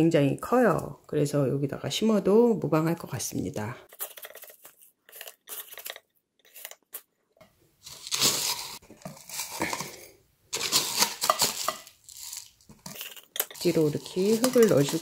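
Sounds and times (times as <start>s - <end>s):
potting mix crunching and rustling: 7.8s - 15.0s.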